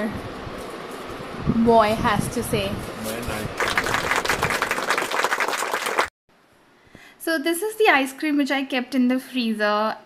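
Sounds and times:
crowd applauding: 3.5 - 6.1.

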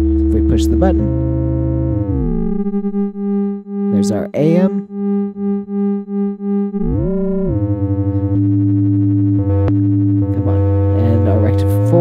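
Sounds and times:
dense synth drone: 0.0 - 12.0
synth tone pulsing: 0.0 - 12.0.

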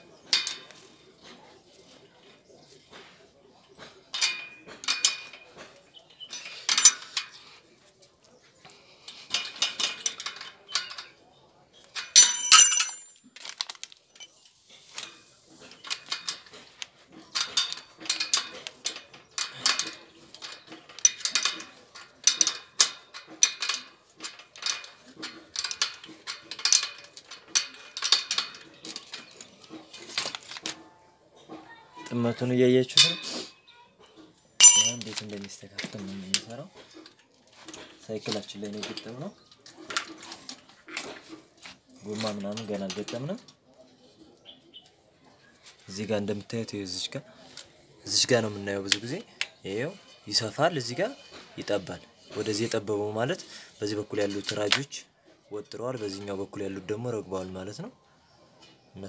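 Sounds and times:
metal tools clinking: 0.2 - 7.6, 8.2 - 31.6, 32.9 - 33.4, 34.0 - 43.5
bright ringing clink: 34.6 - 35.1.

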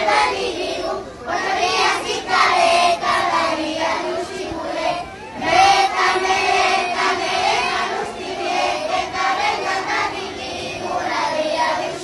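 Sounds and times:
young children singing together: 0.0 - 12.0.

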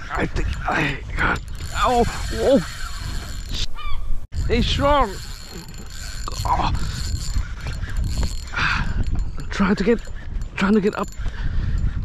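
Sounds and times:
fishing reel clicking and ratcheting: 0.5 - 3.7, 4.3 - 12.0.

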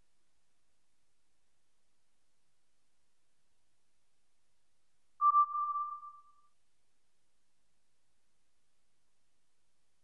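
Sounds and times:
electronic tone: 5.2 - 6.4.

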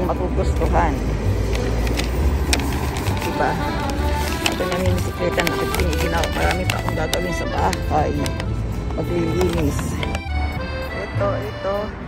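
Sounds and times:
bicycle clicks and rattles: 1.4 - 7.1.

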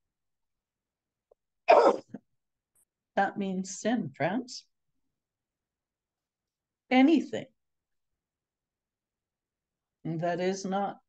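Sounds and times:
person clearing throat: 1.7 - 2.2.

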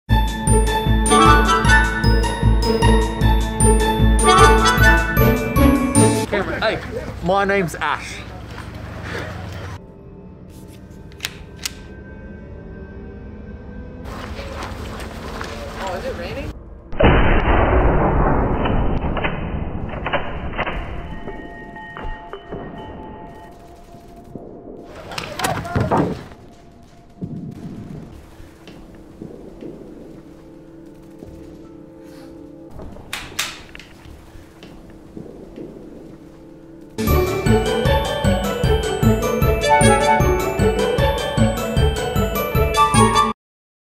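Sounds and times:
low music drone: 9.3 - 15.4, 27.0 - 42.1.

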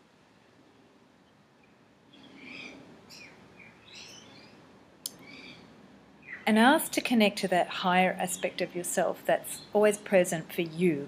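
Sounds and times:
faint bird chirping: 0.3 - 10.7.

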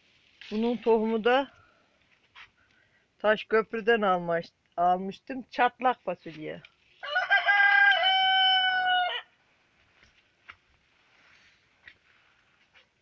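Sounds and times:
rooster crowing: 7.0 - 9.3.

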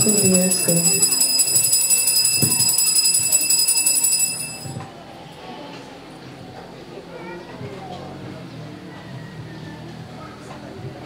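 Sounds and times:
small bells jingling: 0.0 - 4.8.

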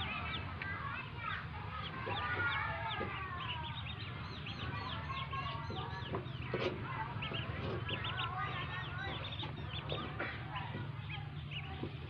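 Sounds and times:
ducklings peeping: 0.0 - 12.0.

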